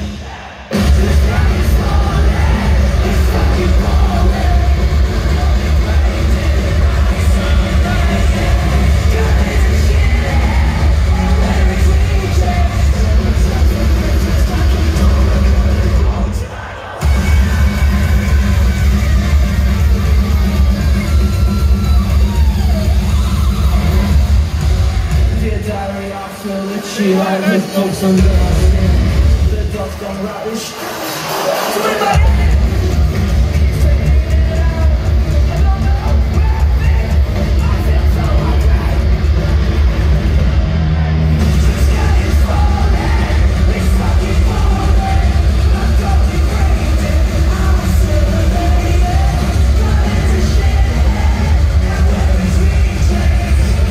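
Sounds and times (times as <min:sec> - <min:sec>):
heavy bass: 0:00.0 - 0:26.0, 0:28.1 - 0:29.9, 0:32.1 - 0:53.9
rock band playing live: 0:00.0 - 0:53.9.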